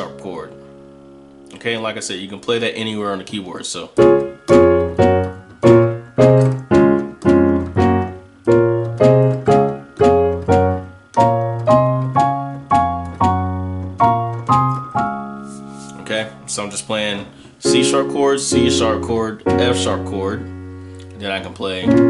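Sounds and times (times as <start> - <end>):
digital piano chords: 0.0 - 22.0.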